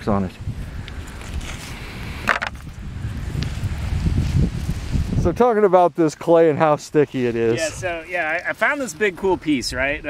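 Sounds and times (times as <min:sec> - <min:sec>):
wind buffeting microphone: 0:00.0 - 0:05.9, 0:06.7 - 0:10.0
rock clattering into plastic bucket: 0:02.2 - 0:02.6.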